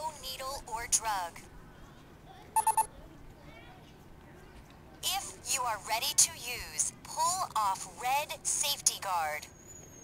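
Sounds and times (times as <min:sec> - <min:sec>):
quick electronic beeps: 0:02.6 - 0:02.9.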